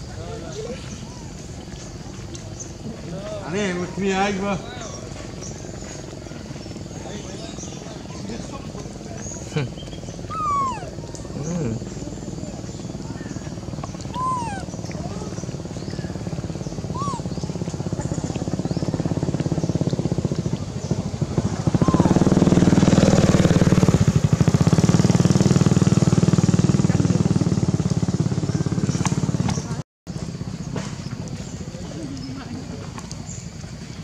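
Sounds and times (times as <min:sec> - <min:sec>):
small engine running: 0:11.4 - 0:33.0.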